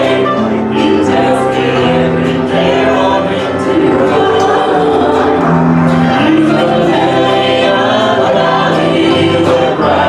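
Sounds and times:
guitars and keyboard: 0.0 - 10.0
voices singing together: 0.0 - 10.0.

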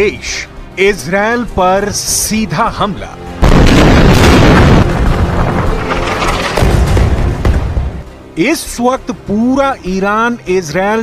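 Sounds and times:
dramatic music: 0.0 - 10.1
loud boom: 3.4 - 8.0.

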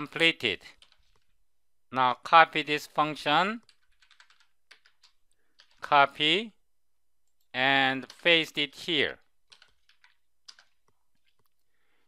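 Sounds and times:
computer keyboard clicks: 3.6 - 5.8, 9.5 - 11.7.

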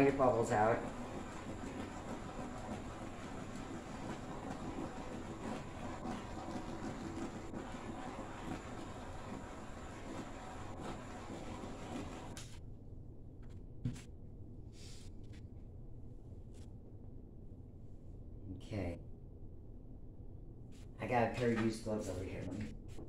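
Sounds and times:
torch flame hissing: 0.0 - 12.5.

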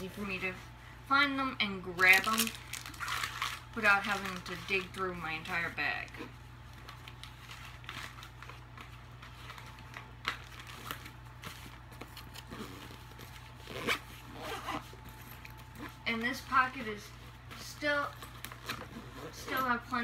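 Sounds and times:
fabric backpack rustling: 11.0 - 20.0.

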